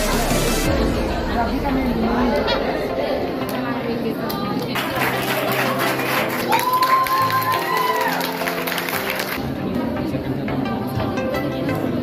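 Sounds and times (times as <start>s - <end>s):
background music: 0.0s - 12.0s
crowd talking: 0.0s - 12.0s.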